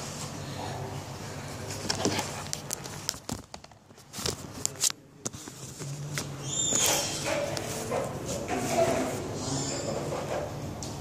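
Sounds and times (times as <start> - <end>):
muffled voices: 0.4 - 3.0, 4.4 - 11.0.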